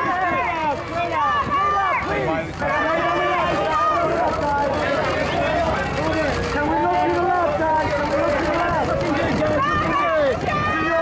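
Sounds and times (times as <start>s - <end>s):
photographers shouting: 0.0s - 11.0s.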